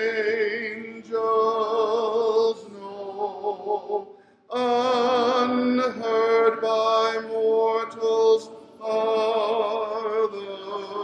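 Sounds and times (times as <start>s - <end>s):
man singing a hymn: 0.0s - 11.0s.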